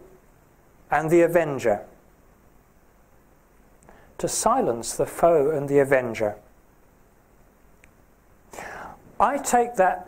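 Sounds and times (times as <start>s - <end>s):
man breathing into microphone: 3.9s - 4.2s, 8.5s - 9.1s.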